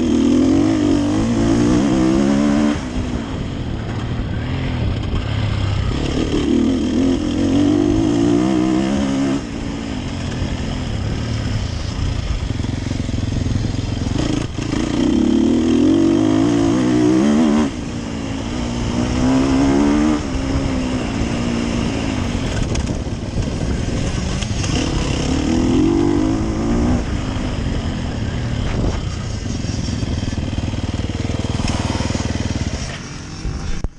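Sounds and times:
motorcycle engine revving: 0.0 - 33.9.

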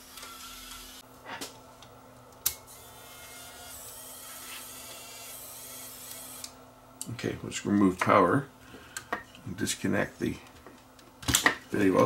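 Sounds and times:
small motor humming: 0.0 - 1.0, 2.7 - 6.6.

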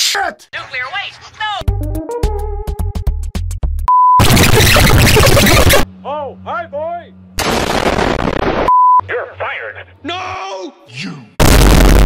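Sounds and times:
censor bleep: 3.9 - 4.4, 8.7 - 9.0
harsh noise burst: 4.2 - 5.8, 11.4 - 12.0.

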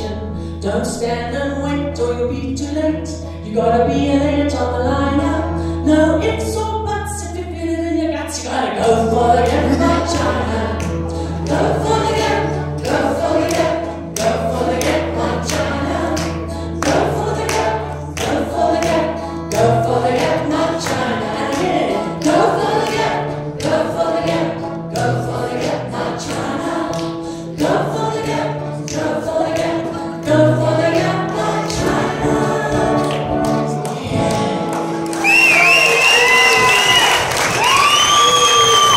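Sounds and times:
acoustic guitar strumming: 8.8 - 35.2
person singing: 25.0 - 36.7
audience applause and cheering: 34.7 - 38.9.

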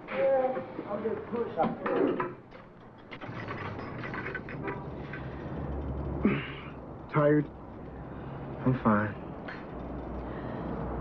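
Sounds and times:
low rumble: 4.3 - 11.0.

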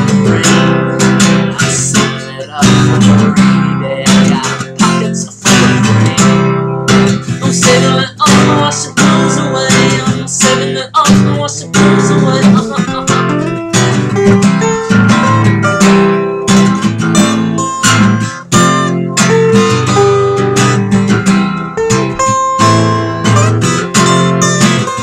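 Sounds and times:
acoustic guitar strumming chords: 0.0 - 25.0.

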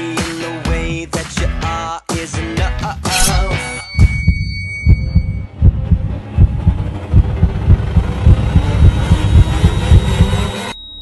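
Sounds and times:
heartbeat thumps: 4.0 - 10.5.

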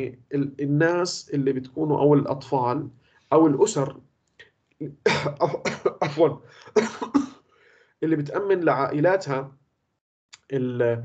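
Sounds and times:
man coughing: 5.0 - 7.4.

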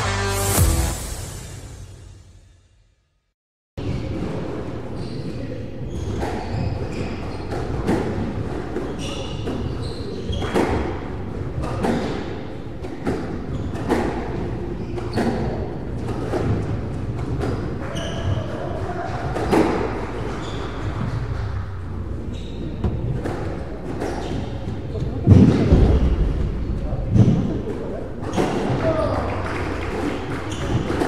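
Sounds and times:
shoes squeaking on wooden floor: 13.4 - 18.8, 19.4 - 25.2.

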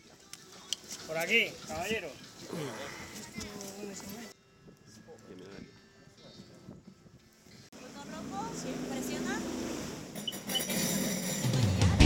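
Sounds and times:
faint background voices: 0.0 - 9.4.

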